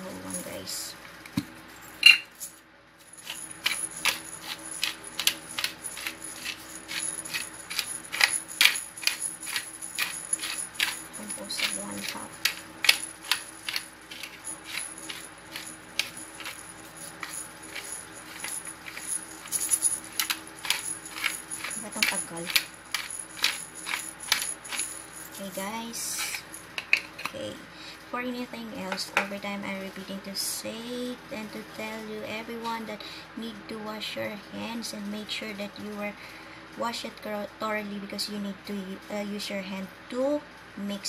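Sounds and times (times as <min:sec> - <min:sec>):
pepper mill grinding: 0:03.1 - 0:27.3.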